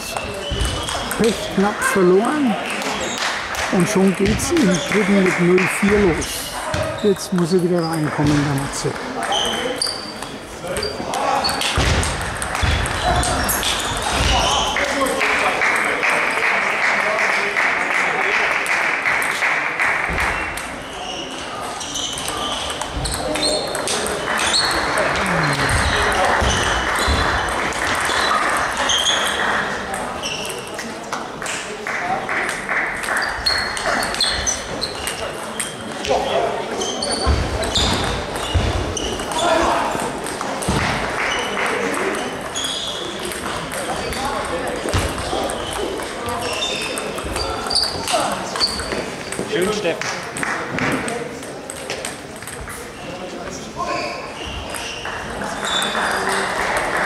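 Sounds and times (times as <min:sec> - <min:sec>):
murmur of voices: 0:00.0 - 0:57.0.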